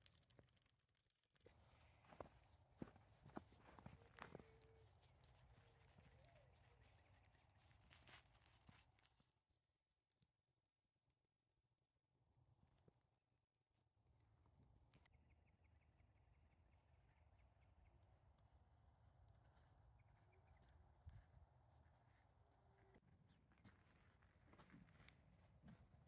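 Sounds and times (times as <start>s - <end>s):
faint crunches in snow: 1.4s - 9.4s.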